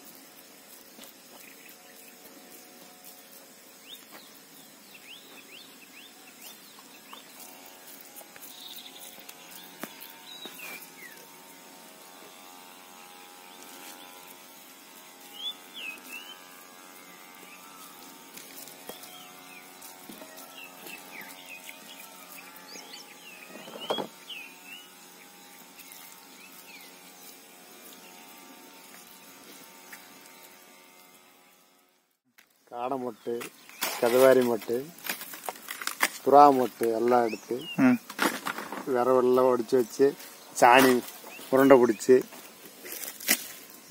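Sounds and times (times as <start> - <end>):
birds chirping: 3.7 - 31.6, 36.2 - 38.2, 38.8 - 43.9.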